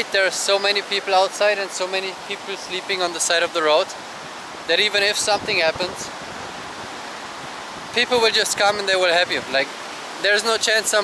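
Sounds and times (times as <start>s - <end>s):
sea surf on rocky shore: 0.0s - 11.0s.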